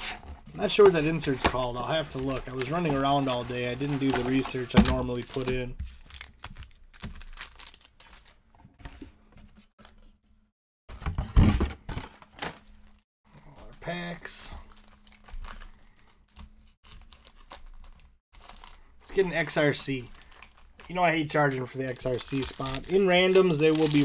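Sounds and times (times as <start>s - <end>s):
foil packs crinkling: 0.6s - 8.4s, 13.6s - 24.0s.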